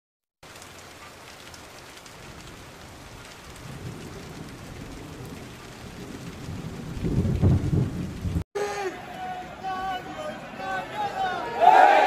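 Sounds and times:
rain falling: 0:00.4 - 0:12.0
rumble of thunder: 0:02.2 - 0:08.4.

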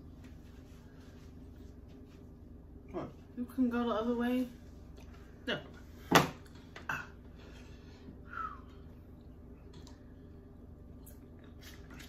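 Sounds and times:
quiet chewing: 0:08.7 - 0:12.0.

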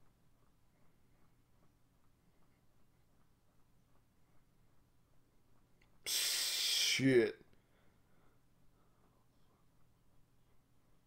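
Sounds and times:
person gasping: 0:06.1 - 0:07.0
voiced exclamation: 0:06.1 - 0:07.4.

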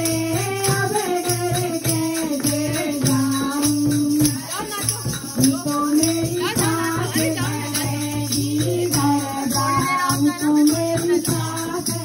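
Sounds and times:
hand drum: 0:00.0 - 0:12.0
jingling percussion: 0:00.0 - 0:12.0
woman singing devotional song: 0:00.0 - 0:12.0.

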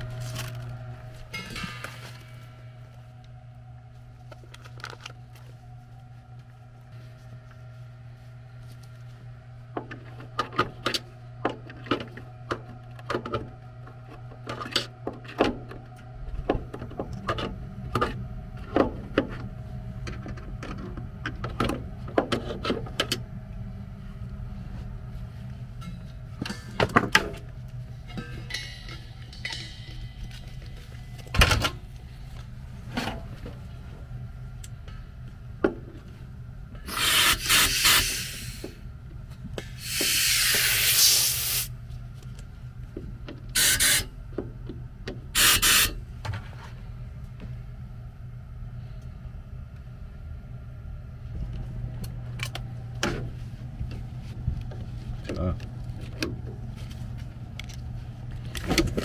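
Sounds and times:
compressed gas hiss: 0:36.8 - 0:38.8, 0:39.7 - 0:41.8, 0:43.6 - 0:44.1, 0:45.4 - 0:46.0.

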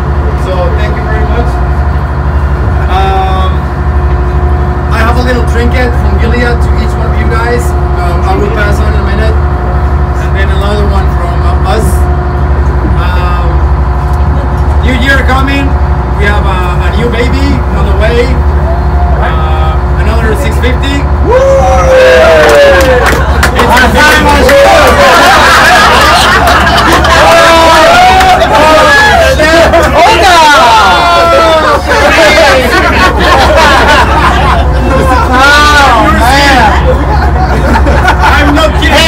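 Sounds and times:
ship engine drone: 0:00.0 - 0:39.0.

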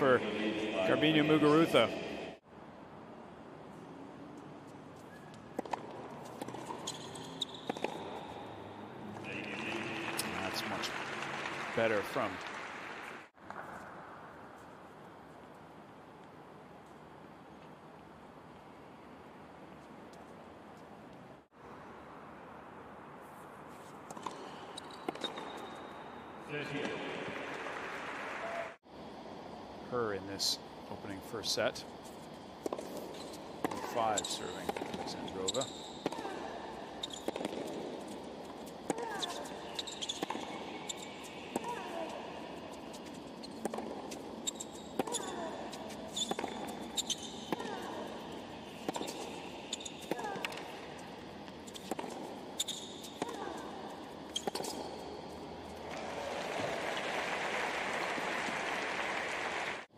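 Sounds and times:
tennis court ambience: 0:00.0 - 0:59.9
tennis ball bouncing: 0:05.3 - 0:08.8, 0:24.1 - 0:26.0, 0:32.6 - 0:56.1
racket striking tennis ball: 0:05.4 - 0:08.7, 0:32.6 - 0:56.1.

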